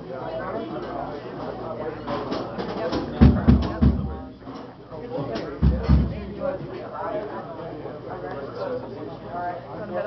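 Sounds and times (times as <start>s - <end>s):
voices: 0.0s - 10.0s
live jam music with drums: 2.6s - 4.2s, 5.6s - 6.5s
heavy deep drum hits: 3.2s - 4.3s, 5.6s - 6.6s.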